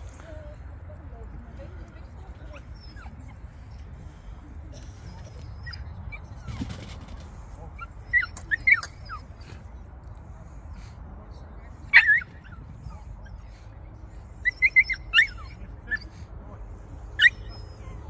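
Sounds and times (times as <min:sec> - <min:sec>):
dog yipping and barking: 0:08.0 - 0:09.3, 0:11.9 - 0:13.0, 0:14.4 - 0:16.1, 0:17.2 - 0:18.0.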